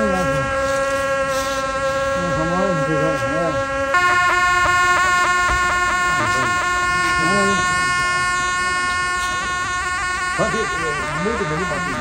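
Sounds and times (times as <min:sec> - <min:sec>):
people talking: 0:00.0 - 0:00.8, 0:02.0 - 0:03.8, 0:04.8 - 0:12.0
ceremonial horns playing: 0:00.0 - 0:12.0.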